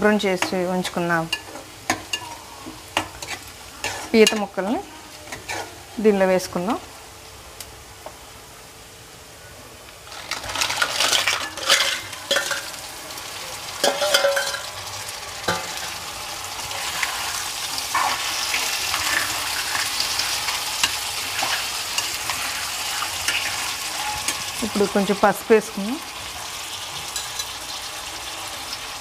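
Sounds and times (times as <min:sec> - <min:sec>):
food sizzling in oil: 0:00.0 - 0:08.9, 0:10.0 - 0:29.0
ladle scraping pan: 0:01.4 - 0:04.5, 0:05.3 - 0:05.8, 0:16.6 - 0:24.6.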